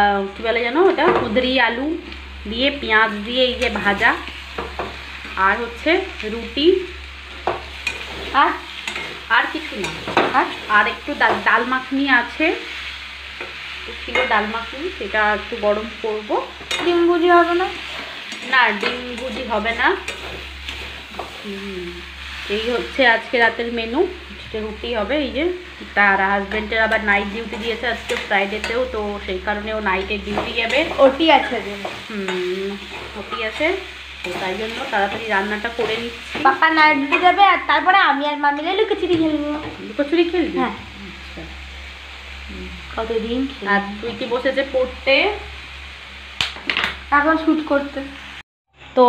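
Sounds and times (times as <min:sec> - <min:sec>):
vegetables sizzling in a pan: 0:00.0 - 0:49.0
spatula stirring: 0:07.3 - 0:11.6, 0:16.6 - 0:21.5, 0:30.2 - 0:37.4.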